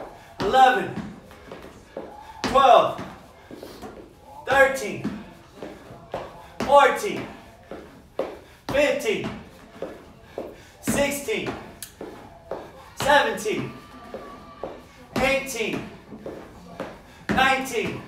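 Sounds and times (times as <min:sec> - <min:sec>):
foot thudding on step platform: 0:03.8 - 0:18.0.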